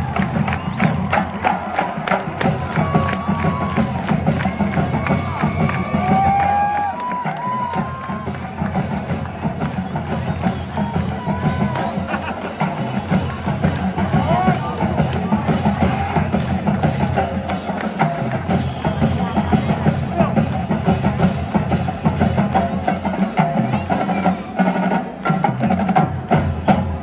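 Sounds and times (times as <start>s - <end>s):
crowd chatter and shouts: 0.0s - 27.0s
marching drumline playing: 0.0s - 27.0s.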